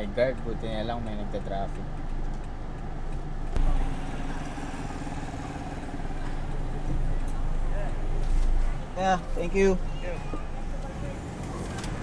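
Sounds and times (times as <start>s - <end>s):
car engine hum inside cabin: 0.0s - 12.0s.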